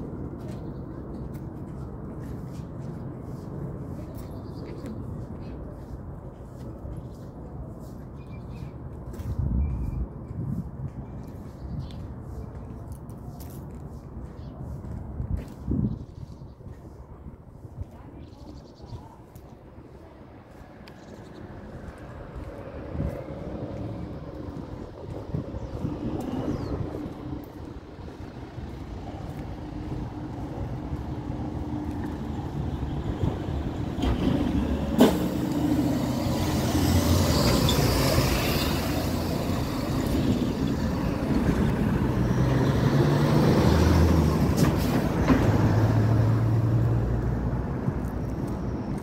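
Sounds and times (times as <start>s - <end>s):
heavy vehicle engine rumble: 20.0s - 49.0s.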